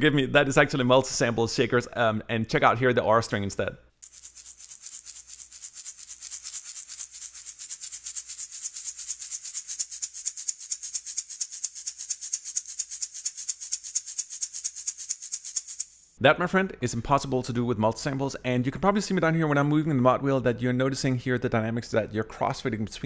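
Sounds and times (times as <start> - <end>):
shaker groove: 4.0 - 16.2.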